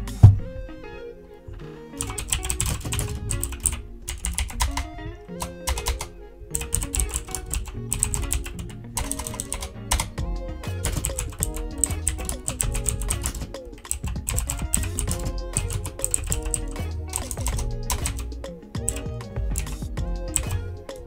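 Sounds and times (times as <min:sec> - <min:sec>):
background music: 0:00.0 - 0:21.0
keyboard typing: 0:02.0 - 0:10.2, 0:10.8 - 0:21.0.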